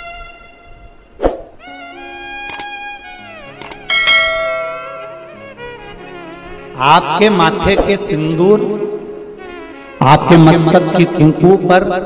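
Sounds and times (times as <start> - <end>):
devotional music: 0.0 - 11.8
quick clicks: 2.5 - 2.7, 3.6 - 3.9
bell strike ringing: 3.9 - 5.4.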